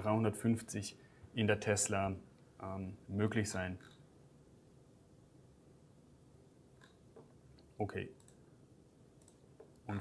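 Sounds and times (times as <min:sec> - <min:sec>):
computer mouse clicks: 0:06.8 - 0:08.4, 0:09.2 - 0:09.9.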